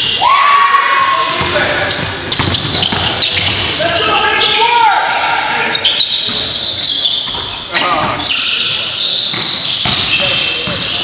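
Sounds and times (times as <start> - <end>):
sneakers squeaking: 0.0 - 0.2, 1.0 - 11.0
players calling out: 0.1 - 11.0
basketball bouncing: 1.4 - 3.8, 9.2 - 11.0.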